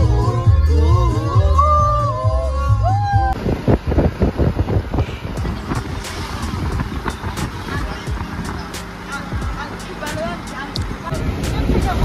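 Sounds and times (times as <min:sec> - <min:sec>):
vehicle engine and road rumble: 0:00.0 - 0:12.0
faint music: 0:03.8 - 0:12.0
faint voices: 0:04.8 - 0:12.0.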